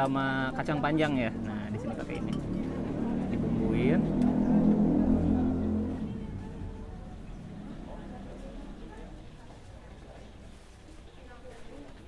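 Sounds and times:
engine humming: 0:00.0 - 0:11.3.

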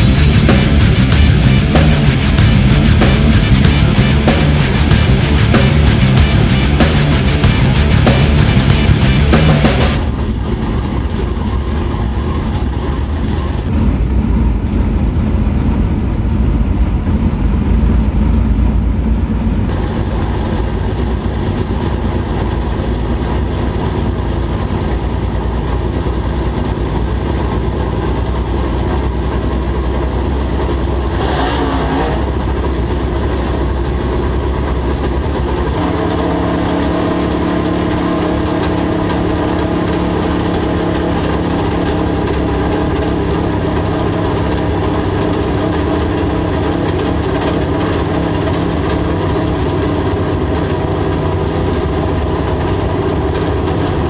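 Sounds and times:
race car engine running: 0:00.0 - 0:54.0
rush of noise: 0:00.0 - 0:54.0.

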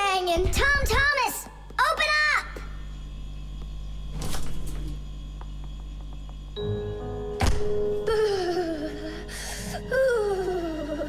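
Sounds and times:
low steady hum: 0:00.0 - 0:11.0
refrigerator door shutting thunk: 0:07.4 - 0:07.9.

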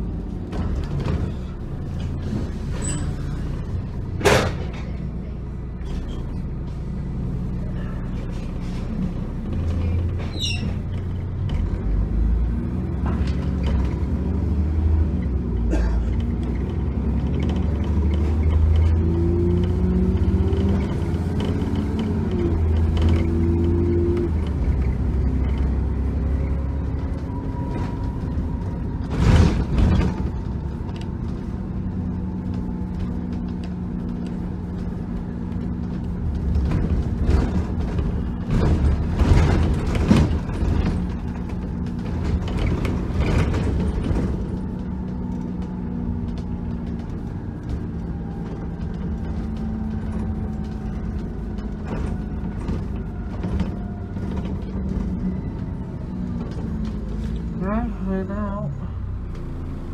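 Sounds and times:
bus engine droning: 0:00.0 - 0:59.9
bodywork creaking and rattling: 0:00.2 - 0:57.8.

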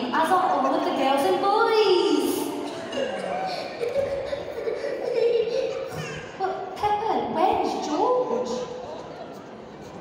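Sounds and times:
woman speaking over public address: 0:00.0 - 0:02.7, 0:06.4 - 0:08.8.

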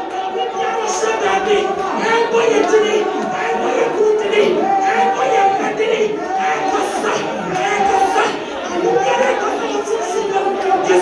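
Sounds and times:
women praying aloud together: 0:00.0 - 0:11.0.

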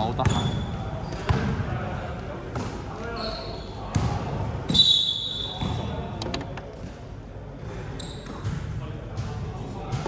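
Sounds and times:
sneaker squeaks: 0:00.0 - 0:01.5, 0:02.6 - 0:06.1, 0:07.7 - 0:08.7
players' voices: 0:00.0 - 0:10.0
basketball bouncing: 0:03.9 - 0:04.2.

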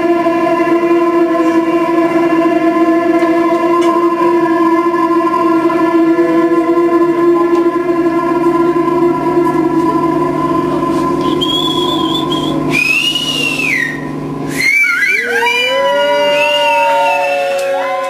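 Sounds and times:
synthesizer drone: 0:00.0 - 0:18.0
high whistling synth tones: 0:05.4 - 0:18.0.

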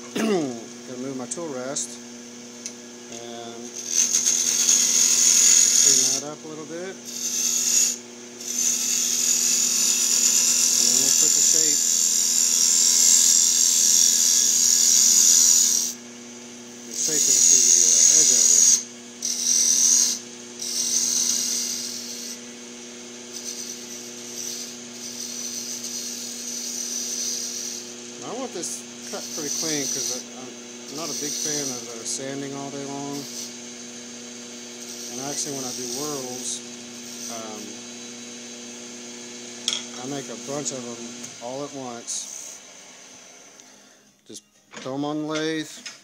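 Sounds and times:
wood lathe humming: 0:02.6 - 0:44.0
gouge cutting wood hissing: 0:03.8 - 0:16.0, 0:23.3 - 0:34.0, 0:34.7 - 0:37.9.

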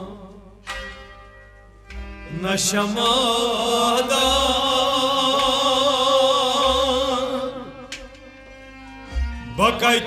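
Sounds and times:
person singing: 0:02.3 - 0:08.1.

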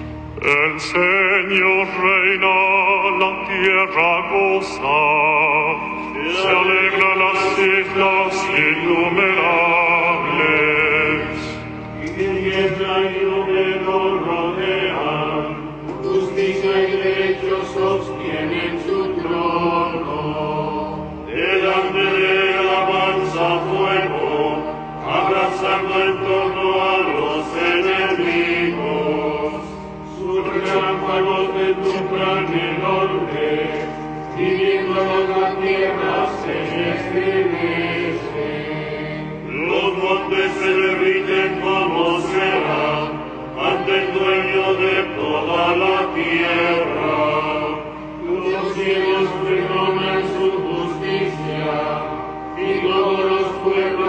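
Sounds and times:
liturgical chant singing: 0:00.0 - 0:54.0.

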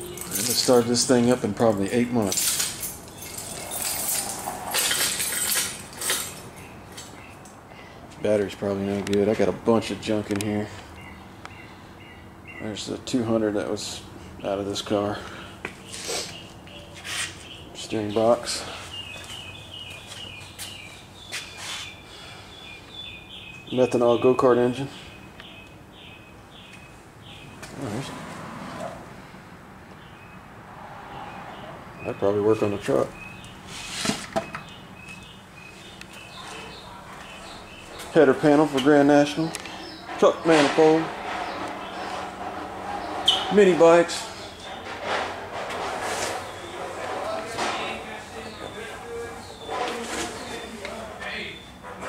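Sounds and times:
metallic clinking and jingling: 0:00.0 - 0:07.1
bird chirping: 0:10.5 - 0:13.0, 0:14.4 - 0:28.1, 0:31.1 - 0:44.9, 0:46.4 - 0:52.0.

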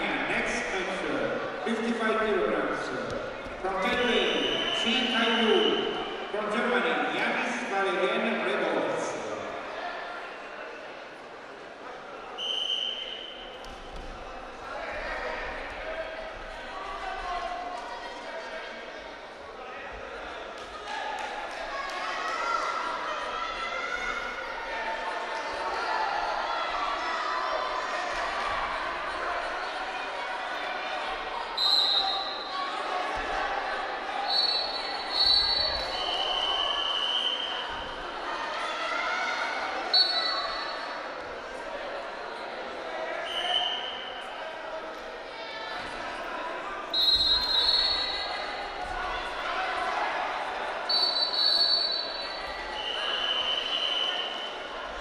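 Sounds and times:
echoing voices in hall: 0:00.0 - 0:55.0.

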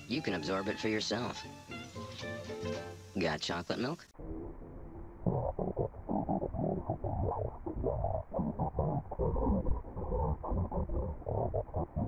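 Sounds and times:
deep garbled voice-like rumble: 0:04.2 - 0:12.0.

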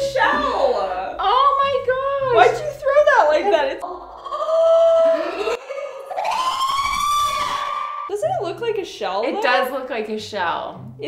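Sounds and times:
woman shrieking: 0:03.9 - 0:08.1.

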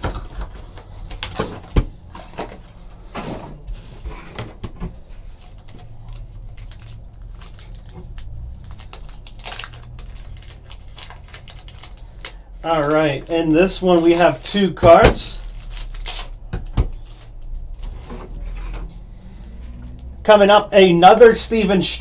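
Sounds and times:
plastic wrap crinkling: 0:05.0 - 0:19.1.

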